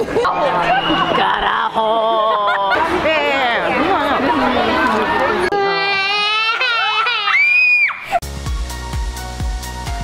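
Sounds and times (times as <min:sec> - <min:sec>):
toddler crying and shrieking: 0:05.5 - 0:08.2.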